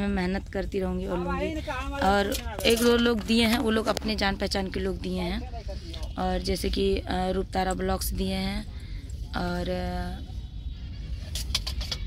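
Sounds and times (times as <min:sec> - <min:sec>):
woman's voice: 0:00.0 - 0:05.5, 0:06.2 - 0:08.7, 0:09.3 - 0:10.3
steady low rumble: 0:00.0 - 0:11.4.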